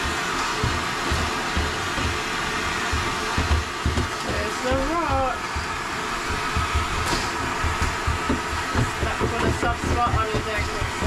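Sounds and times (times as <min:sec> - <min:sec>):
vacuum cleaner whining: 0:00.0 - 0:11.0.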